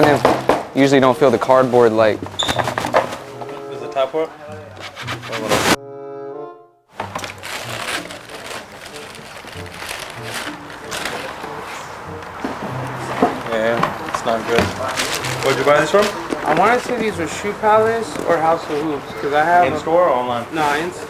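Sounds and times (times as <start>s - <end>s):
shoe boxes being handled: 0.0s - 0.8s, 1.4s - 3.6s, 4.7s - 5.8s, 6.9s - 17.3s
short musical tone: 3.2s - 6.8s
tissue paper crinkling: 7.0s - 11.9s, 14.3s - 17.2s.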